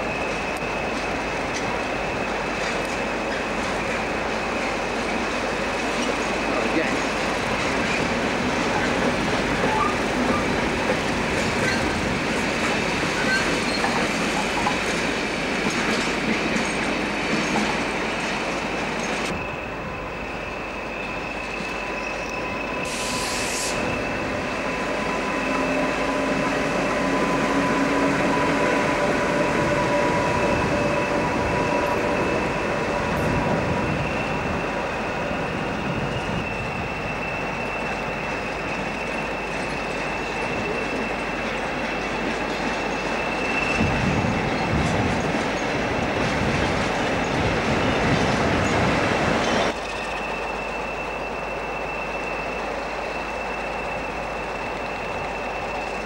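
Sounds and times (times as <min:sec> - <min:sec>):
locomotive running on tracks: 0:00.0 - 0:56.0
short hiss: 0:22.8 - 0:23.8.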